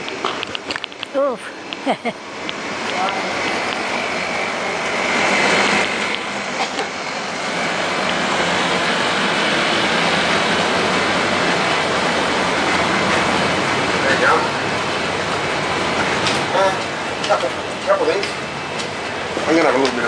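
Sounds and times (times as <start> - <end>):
rushing street noise: 0.0 - 20.0.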